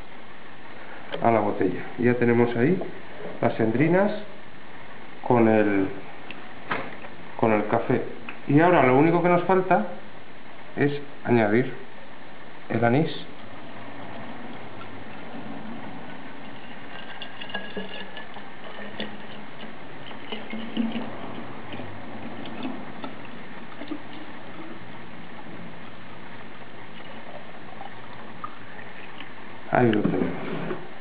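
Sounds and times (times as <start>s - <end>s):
liquid pouring into bottle: 13.4s - 29.7s.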